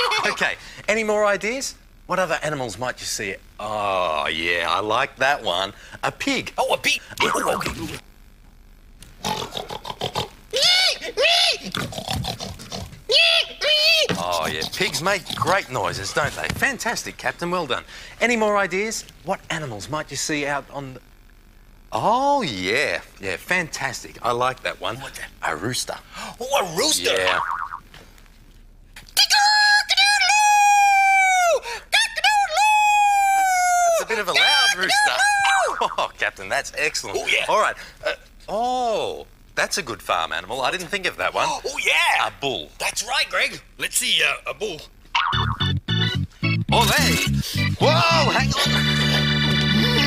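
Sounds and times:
man squealing oinks: 0:00.0 - 0:00.4, 0:07.2 - 0:08.0, 0:09.2 - 0:15.7, 0:26.9 - 0:27.8, 0:34.9 - 0:36.1
man imitating rooster crow: 0:34.9 - 0:36.0.

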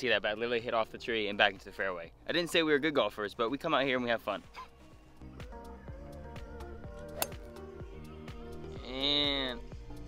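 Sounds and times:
background music with steady beat: 0:00.0 - 0:10.0
golf club striking ball: 0:07.1 - 0:07.5.

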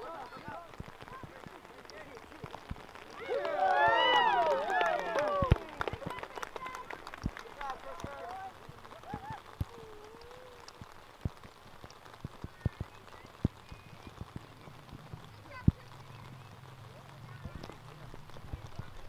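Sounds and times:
distant shouts: 0:00.0 - 0:10.9
players running on grass: 0:00.0 - 0:19.0.

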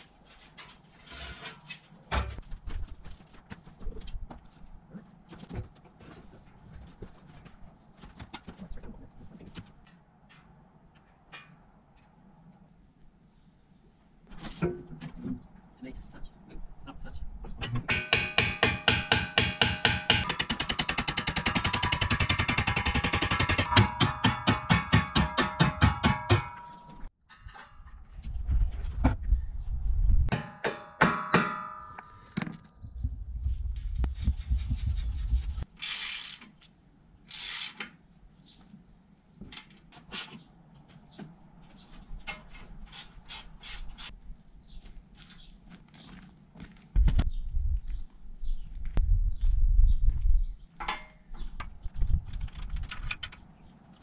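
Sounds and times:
hammer striking steel: 0:17.7 - 0:27.1, 0:30.3 - 0:32.3.

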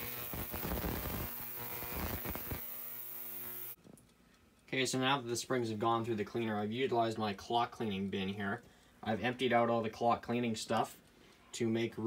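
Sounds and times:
ultrasonic cleaner humming: 0:00.0 - 0:03.8
irregular crackling: 0:00.0 - 0:04.7.

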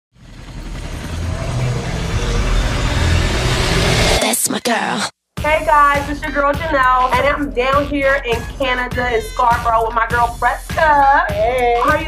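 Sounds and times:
whoosh with deep rumble: 0:00.2 - 0:04.2.

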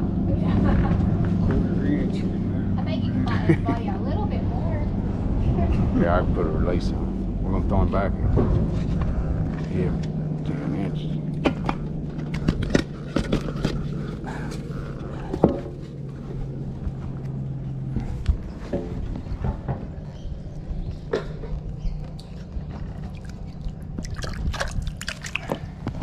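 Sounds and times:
low steady hum: 0:00.0 - 0:26.0
water dripping and splashing: 0:22.2 - 0:26.0.

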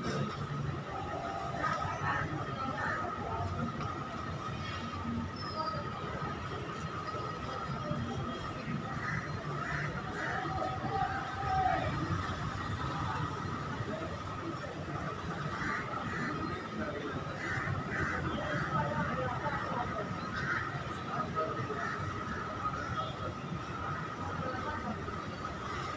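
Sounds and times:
faint indistinct voices: 0:00.0 - 0:25.9.

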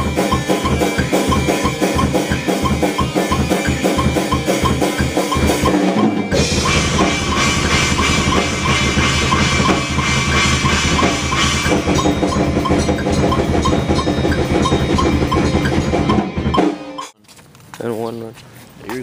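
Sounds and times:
loud rock band music: 0:00.0 - 0:17.2
rock drum kit beat: 0:00.0 - 0:17.2.

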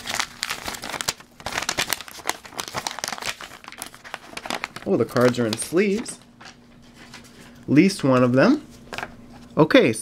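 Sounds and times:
paper crinkling and tearing: 0:00.0 - 0:07.4.

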